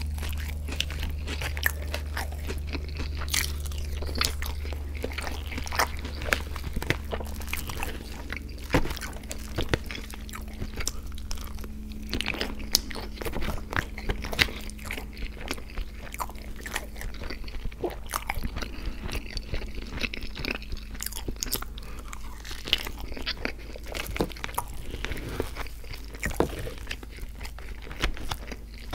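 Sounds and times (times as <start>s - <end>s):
chewing and mouth sounds: 0.0s - 28.9s
faint low hum: 0.0s - 28.9s.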